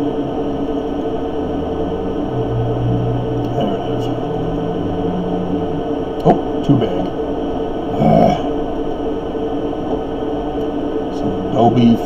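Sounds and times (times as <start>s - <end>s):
electrical hum: 0.0s - 12.0s
man murmuring: 3.4s - 7.1s, 7.9s - 8.6s.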